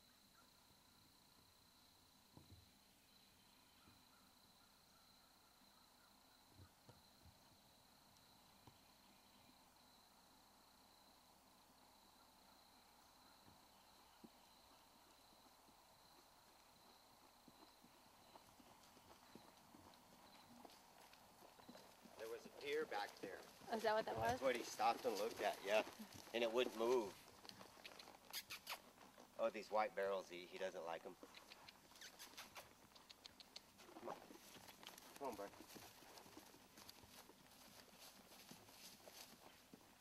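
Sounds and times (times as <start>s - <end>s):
horse hoofbeats on dirt trail: 13.3s - 40.0s.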